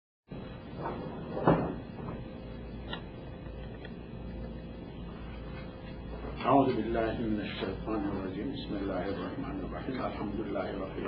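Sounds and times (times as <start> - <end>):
room hiss: 0.3 - 11.0.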